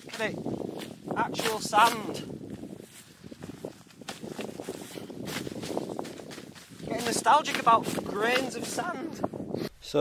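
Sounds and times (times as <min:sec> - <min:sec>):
rustling of tent groundsheet: 0:00.0 - 0:09.1.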